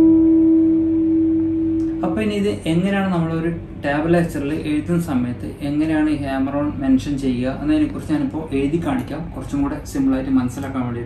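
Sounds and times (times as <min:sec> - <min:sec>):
electric guitar note ringing: 0:00.0 - 0:03.7.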